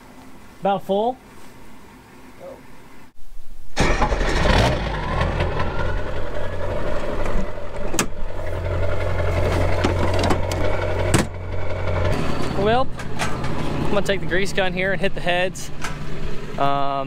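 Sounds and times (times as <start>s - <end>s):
truck engine idling: 3.8s - 17.0s.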